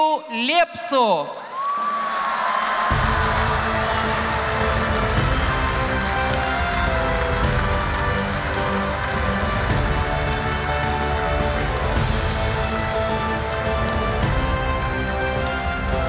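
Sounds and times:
audience applause: 0:01.4 - 0:16.0
ceremonial music: 0:02.9 - 0:16.0.

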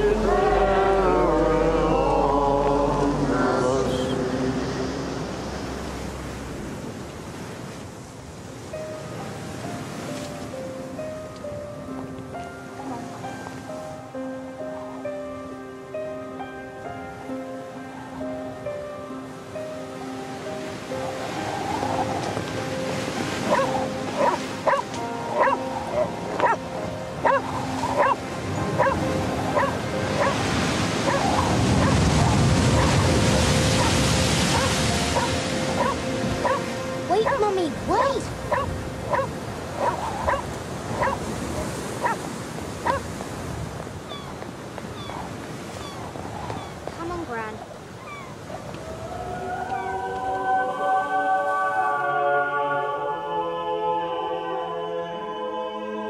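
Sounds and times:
held music notes: 0:00.0 - 0:06.0
waves breaking: 0:00.0 - 0:14.2, 0:16.9 - 0:50.4
dog barking: 0:23.5 - 0:26.6, 0:27.2 - 0:28.2, 0:28.8 - 0:29.0, 0:29.6 - 0:30.4, 0:31.1 - 0:33.0, 0:33.8 - 0:41.2, 0:42.0 - 0:42.2, 0:42.8 - 0:43.1.

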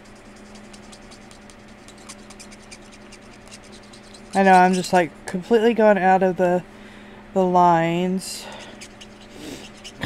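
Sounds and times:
marker scratching on paper: 0:00.0 - 0:05.0, 0:08.6 - 0:10.0
faint steady hum: 0:00.0 - 0:10.0.

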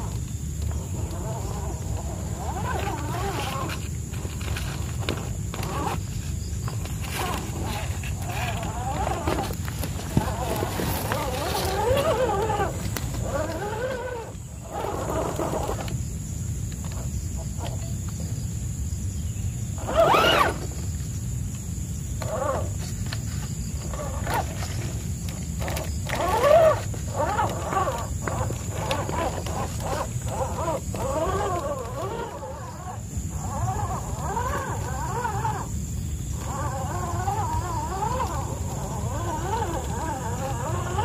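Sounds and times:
electric motor and drivetrain whine: 0:00.0 - 0:18.4, 0:19.1 - 0:41.0.

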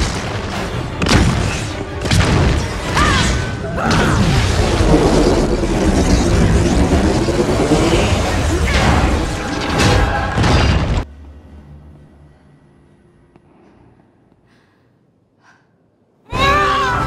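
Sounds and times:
booming impacts and explosions: 0:00.0 - 0:11.1
film music score: 0:00.0 - 0:17.0
energy beam blast: 0:03.9 - 0:11.0.

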